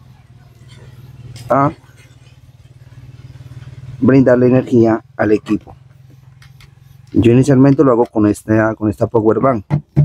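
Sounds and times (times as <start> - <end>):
low pulsing engine hum: 0.0 - 10.0.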